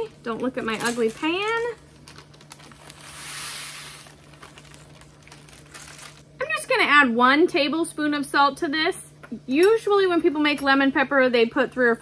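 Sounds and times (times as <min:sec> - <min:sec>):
parchment paper crinkling: 0:00.5 - 0:06.3.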